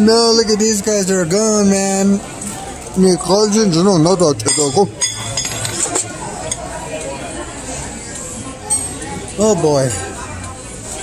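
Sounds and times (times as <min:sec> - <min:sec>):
chatter of diners: 0:00.0 - 0:11.0
cutlery and dishes clinking: 0:04.4 - 0:07.2.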